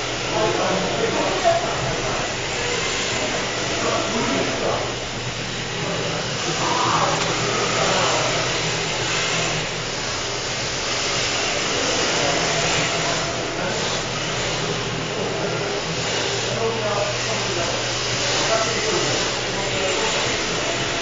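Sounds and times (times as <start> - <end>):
electric motors whirring: 0.0 - 21.0.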